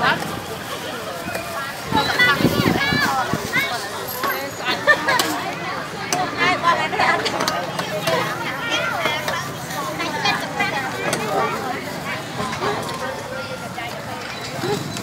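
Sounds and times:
hubbub of voices: 0:00.0 - 0:15.0
people talking close by: 0:00.0 - 0:15.0.

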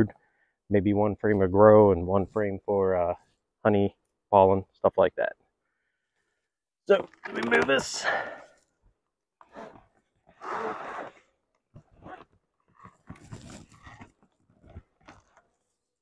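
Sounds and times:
plastic box scraping: 0:12.7 - 0:15.4.

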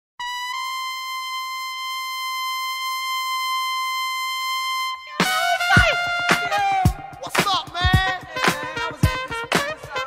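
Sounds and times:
drums and band: 0:05.2 - 0:09.9.

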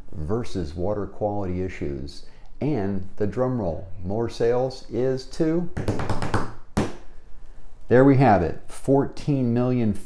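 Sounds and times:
hands drumming on tabletop: 0:05.8 - 0:07.0
hand slap on table: 0:05.8 - 0:07.1.

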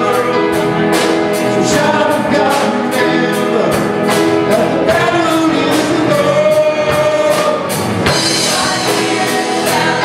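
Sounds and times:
group singing gospel song: 0:00.0 - 0:10.0
live church band: 0:00.0 - 0:10.0
drum and cymbal hits: 0:05.6 - 0:10.0.

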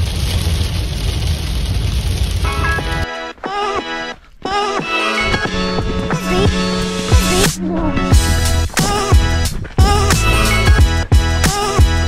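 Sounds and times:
rain and spray hissing on car: 0:00.0 - 0:03.0.

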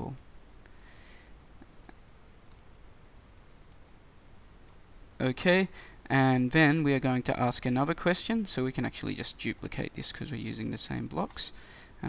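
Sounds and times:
low steady hiss: 0:00.0 - 0:12.0
computer mouse clicks: 0:02.5 - 0:02.7, 0:04.6 - 0:04.8.

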